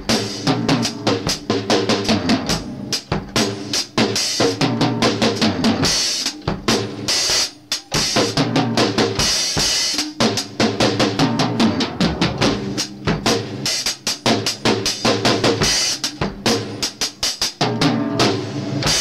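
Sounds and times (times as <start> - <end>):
drum kit played with sticks: 0.0 - 19.0.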